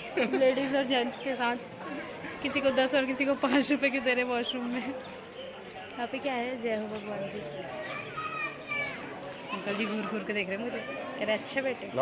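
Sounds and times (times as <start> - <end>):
people talking: 0.0 - 11.9.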